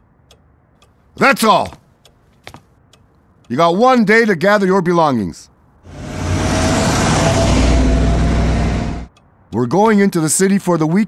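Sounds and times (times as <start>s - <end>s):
car rushing past: 5.9s - 9.1s.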